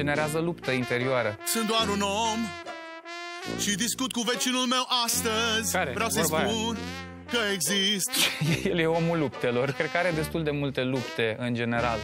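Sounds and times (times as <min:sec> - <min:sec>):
low backing note: 0:05.9 - 0:07.4
person singing with warble: 0:06.0 - 0:06.8.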